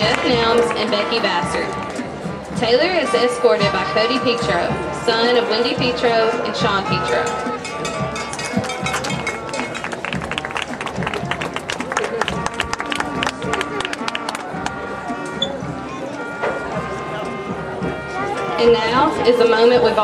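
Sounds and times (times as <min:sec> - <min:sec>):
band playing held notes: 0:00.0 - 0:20.0
crowd talking: 0:00.0 - 0:20.0
quick percussive strikes: 0:07.0 - 0:18.5.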